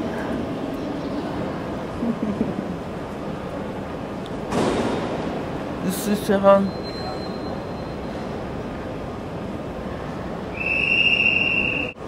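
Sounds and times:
low rumble and hiss: 0.0 - 12.0
high steady squeal: 6.6 - 8.3, 10.5 - 12.0.

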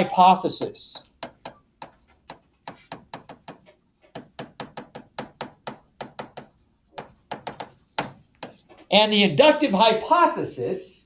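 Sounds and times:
stylus tapping on tablet screen: 0.6 - 8.9.

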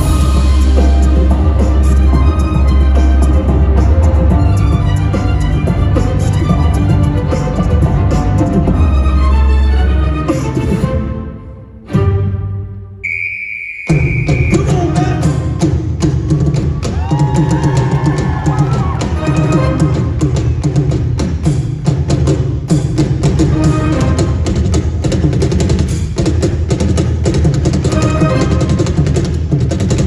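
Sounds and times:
heavy drum hit: 0.0 - 7.0
fast percussion beat: 0.0 - 9.0, 13.9 - 30.0
amplified cello music: 0.0 - 13.0, 18.4 - 20.6, 23.1 - 25.2, 27.8 - 29.4
high whistle-like tone: 13.0 - 14.8.

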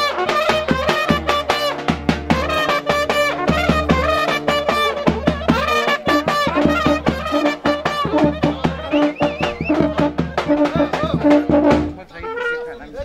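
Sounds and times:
brass band playing dance tune: 0.0 - 13.0
crowd chatter: 0.0 - 13.0.

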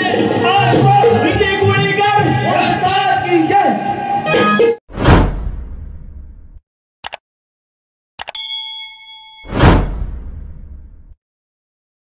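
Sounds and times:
bright bell ding: 8.3 - 9.8.

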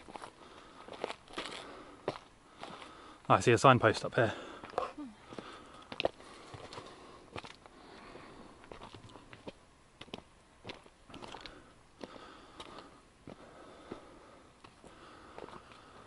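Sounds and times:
footsteps on gravel: 0.0 - 3.0, 8.7 - 15.9.

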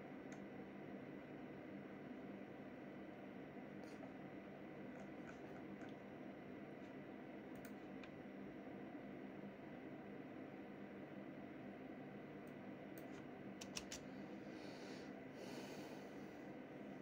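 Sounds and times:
faint background hum: 0.0 - 17.0
sharp clicks: 13.0 - 14.0.

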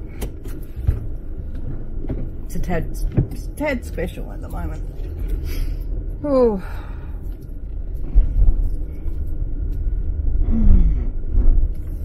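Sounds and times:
car cabin rumble: 0.7 - 4.9.

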